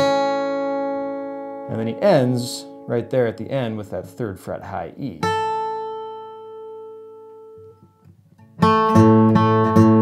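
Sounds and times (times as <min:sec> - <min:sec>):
acoustic guitar note ringing: 0:00.0 - 0:10.0.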